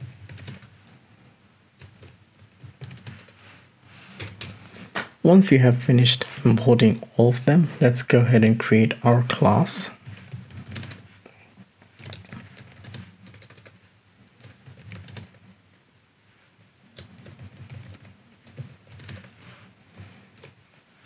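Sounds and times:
computer keyboard typing: 0.0s - 1.0s, 1.8s - 3.4s, 4.2s - 4.6s, 10.0s - 11.0s, 12.0s - 13.8s, 14.4s - 15.4s, 17.0s - 20.6s.

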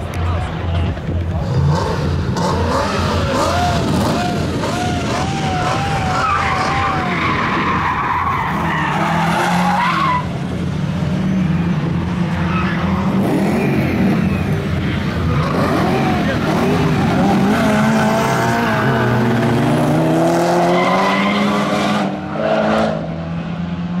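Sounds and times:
race car engines revving: 0.0s - 24.0s.

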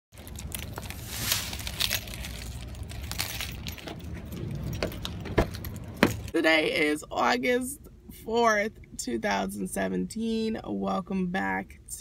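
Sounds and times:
low rumble: 0.2s - 6.4s
car keys jangling: 1.8s - 6.3s.

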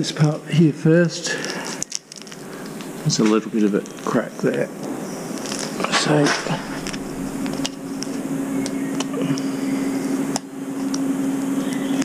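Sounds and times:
machine hum: 2.2s - 12.0s.

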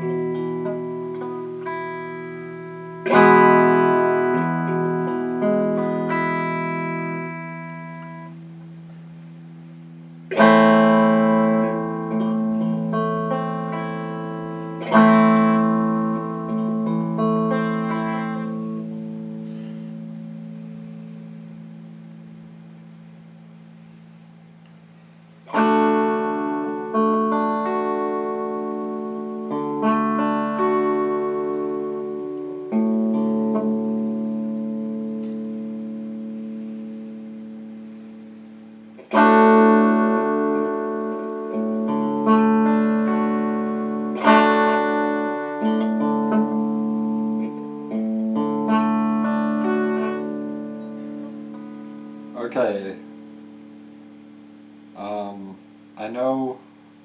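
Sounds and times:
electric guitar chords strummed: 0.0s - 57.0s.

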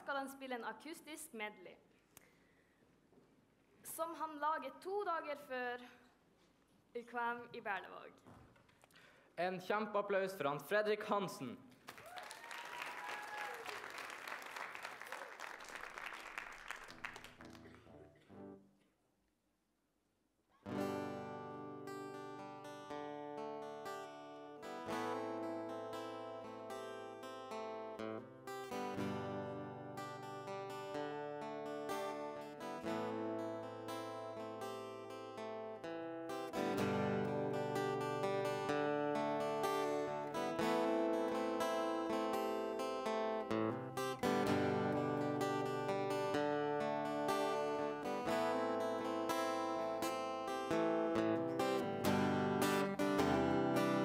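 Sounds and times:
audience applause: 11.9s - 17.9s
acoustic guitar chords: 20.7s - 54.0s.

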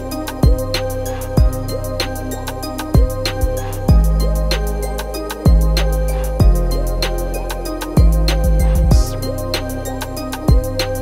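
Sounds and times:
dark trap beat: 0.0s - 11.0s.

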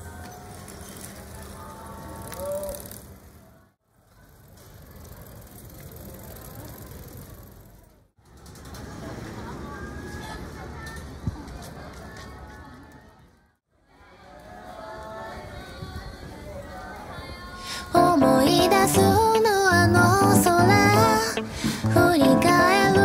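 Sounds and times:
bicycles passing: 0.0s - 10.7s.

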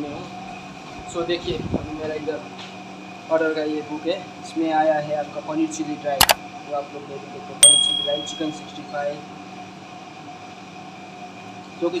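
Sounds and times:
sharp metallic ding: 7.6s - 8.8s.

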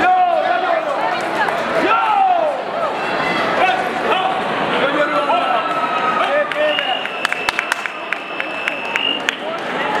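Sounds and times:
crowd chatter echoing: 0.0s - 10.0s.

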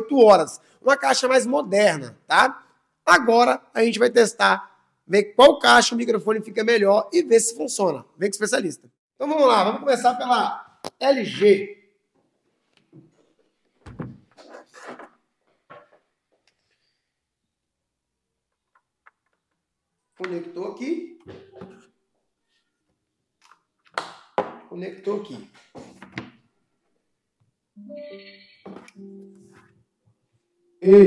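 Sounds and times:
speaker thumping on table: 13.8s - 14.3s.

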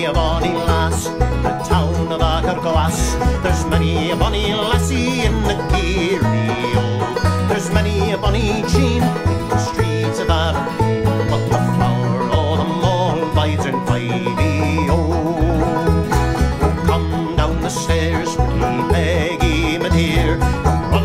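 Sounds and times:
banjo strummed and picked: 0.0s - 21.0s
man singing: 0.0s - 21.0s
low bass pulse: 0.2s - 21.0s.

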